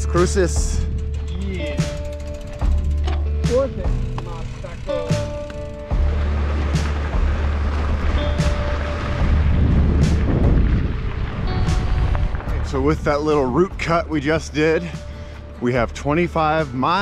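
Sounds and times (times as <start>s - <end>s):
wind buffeting microphone: 0.7s - 15.3s.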